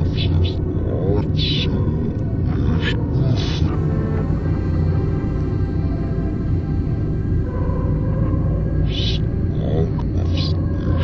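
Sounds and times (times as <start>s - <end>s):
steady low drone: 0.0s - 11.0s.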